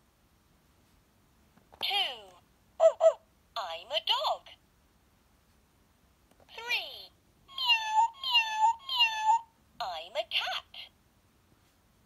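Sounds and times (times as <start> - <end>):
recorded cat meows: 7.5 - 9.5.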